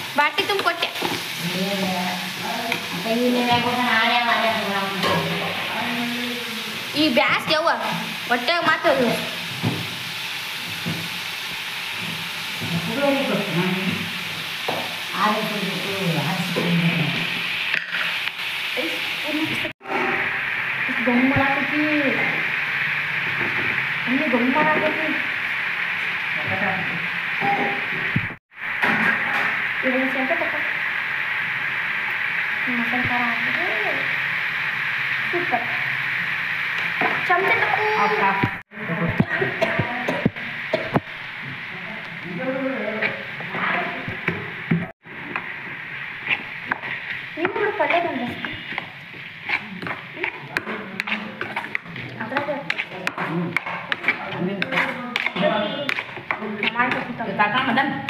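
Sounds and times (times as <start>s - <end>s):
light sizzle: 0.0s - 58.0s
metal spoon stirring in metal pan: 46.1s - 57.8s.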